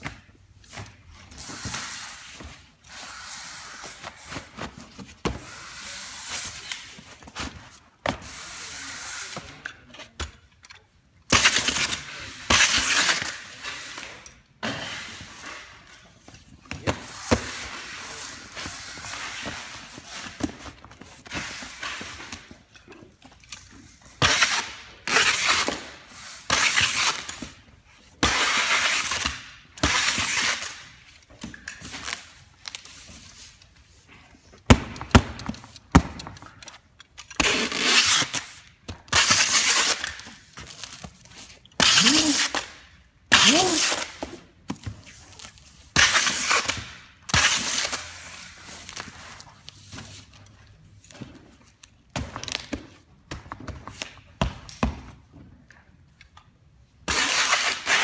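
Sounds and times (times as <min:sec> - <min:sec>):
packing tape tearing off roll: 0:11.3 - 0:14.2, 0:24.0 - 0:27.6, 0:28.2 - 0:33.6, 0:34.7 - 0:50.2, 0:57.0 - 0:58.0
tape strips squealing: 0:41.8 - 0:42.7.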